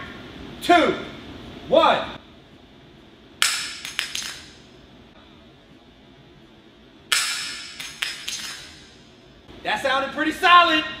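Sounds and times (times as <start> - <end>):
object clacking on concrete floor: 3.4 - 4.6, 7.1 - 8.8.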